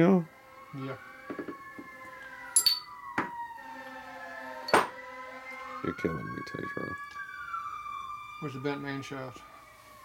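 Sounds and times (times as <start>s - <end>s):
emergency siren wailing: 0.0s - 10.0s
metal parts clinking: 2.6s - 2.9s.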